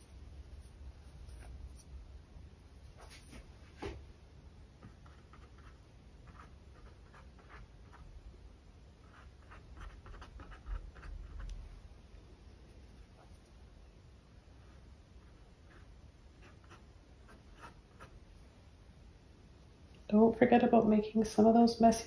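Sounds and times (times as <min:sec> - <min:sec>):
paintbrush brushing paint: 0:00.0 - 0:02.0, 0:09.0 - 0:11.9, 0:14.6 - 0:18.6.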